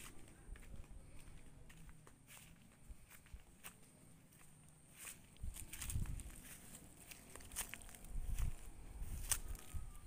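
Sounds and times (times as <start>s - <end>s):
footsteps on dirt and grass: 0.0s - 10.0s.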